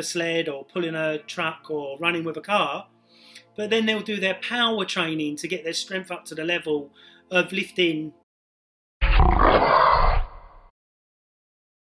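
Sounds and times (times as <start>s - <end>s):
gruff outro sound effect: 9.0s - 10.7s.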